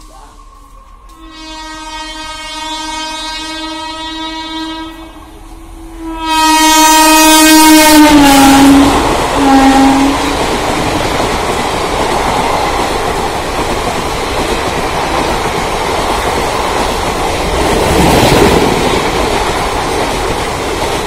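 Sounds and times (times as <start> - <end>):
train rushing past: 0.0 - 21.0
train horn blasts: 1.0 - 10.5.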